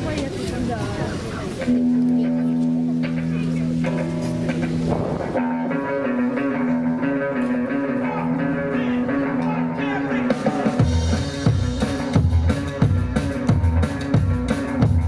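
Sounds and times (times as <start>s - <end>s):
drums and upright bass beat: 0.0s - 15.0s
electric guitar chords: 1.6s - 15.0s.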